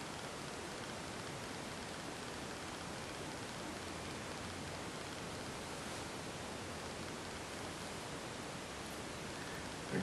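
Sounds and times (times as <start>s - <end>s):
microphone hiss: 0.0s - 10.0s.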